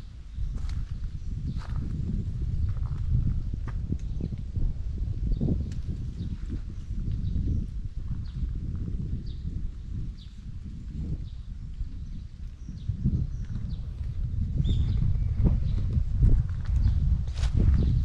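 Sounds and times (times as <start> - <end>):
wind rumbling on microphone: 0.0 - 18.0
small birds chirping: 5.2 - 17.1.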